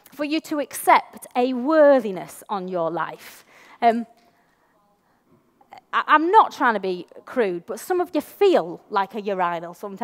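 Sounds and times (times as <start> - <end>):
woman speaking: 0.0 - 4.1, 5.7 - 10.0.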